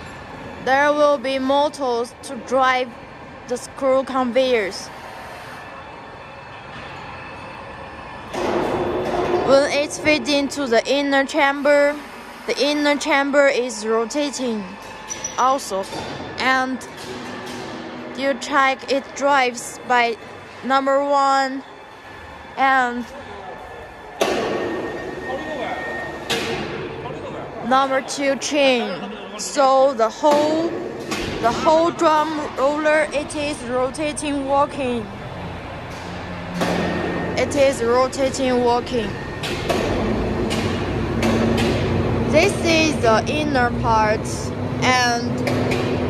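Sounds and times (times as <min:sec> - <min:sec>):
loud workshop noise: 0:00.0 - 0:46.0
machinery humming: 0:00.0 - 0:46.0.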